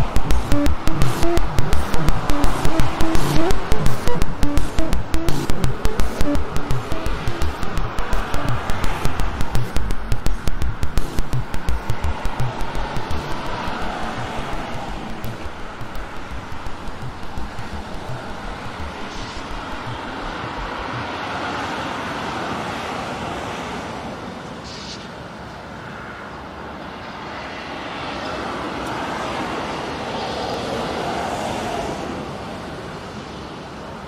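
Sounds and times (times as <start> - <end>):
low thumps: 0.0 - 21.1
steady rushing noise: 0.0 - 23.6.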